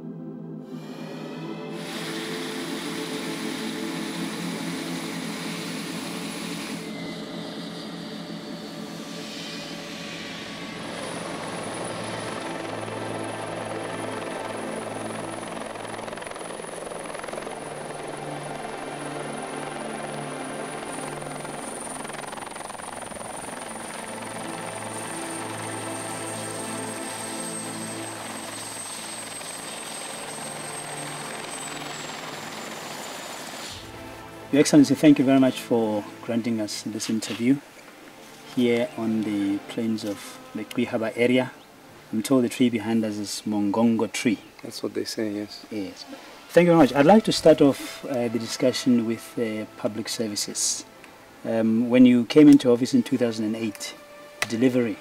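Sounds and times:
helicopter rotor and engine: 0.7 - 55.0.

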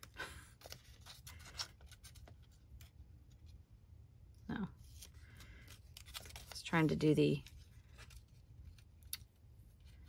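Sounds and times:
paper sticker sheet rustling: 0.0 - 3.5, 4.8 - 10.0.

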